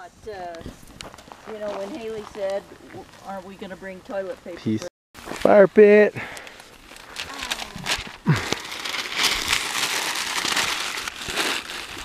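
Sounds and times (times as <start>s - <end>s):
newspaper crumpling: 6.4s - 12.0s.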